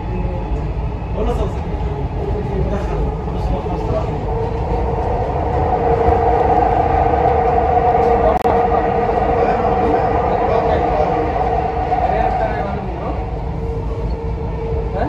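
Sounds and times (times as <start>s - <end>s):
train rumble inside carriage: 0.0s - 15.0s
steady hum: 0.3s - 15.0s.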